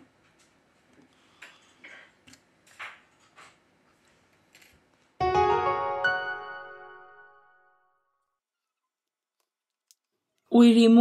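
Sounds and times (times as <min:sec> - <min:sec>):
faint piano music: 0:05.2 - 0:08.0.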